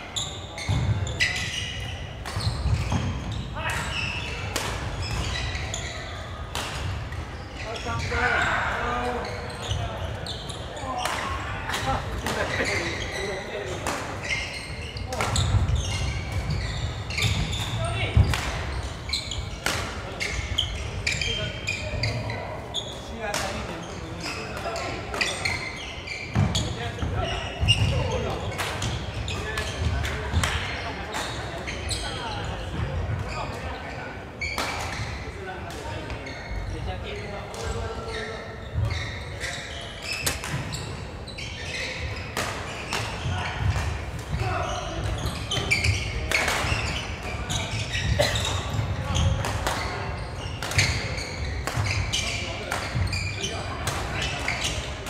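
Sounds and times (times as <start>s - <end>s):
background chatter: 0.0s - 55.0s
rackets striking shuttlecock: 45.0s - 53.2s.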